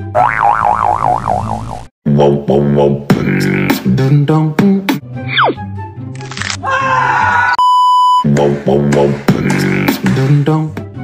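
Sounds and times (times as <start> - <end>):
cartoon boing warbling tone: 0.2 - 1.8.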